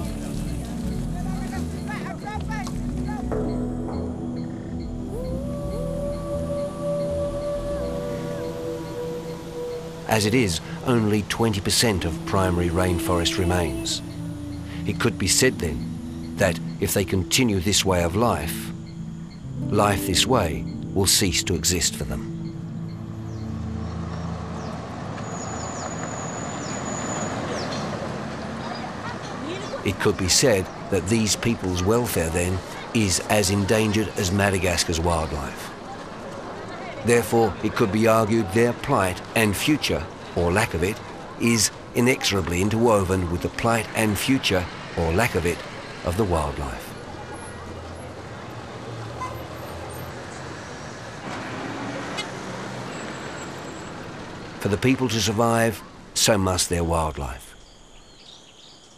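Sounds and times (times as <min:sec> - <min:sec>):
held low music notes: 0:00.0 - 0:28.6
vehicle engine hum: 0:00.0 - 0:57.4
rushing background noise: 0:00.0 - 0:58.9
street background noise: 0:00.0 - 0:58.9.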